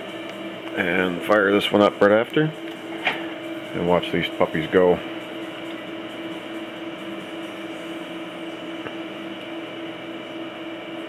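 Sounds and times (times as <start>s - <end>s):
computer fans humming: 0.0s - 11.0s.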